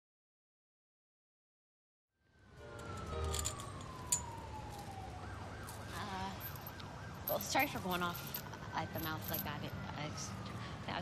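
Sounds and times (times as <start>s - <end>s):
distant emergency siren: 2.2s - 11.0s
low city traffic rumble: 2.3s - 11.0s.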